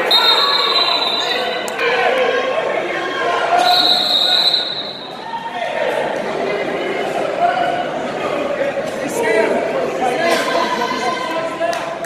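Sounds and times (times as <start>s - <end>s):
spectators and coaches shouting: 0.0s - 12.0s.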